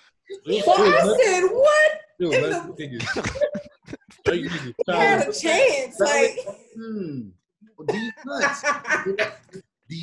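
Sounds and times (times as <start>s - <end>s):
people laughing: 2.8s - 5.4s, 8.0s - 9.7s.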